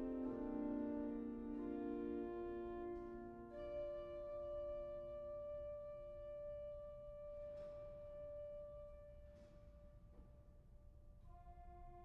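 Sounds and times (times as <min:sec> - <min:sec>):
pipe organ playing slowly: 0:00.0 - 0:10.0.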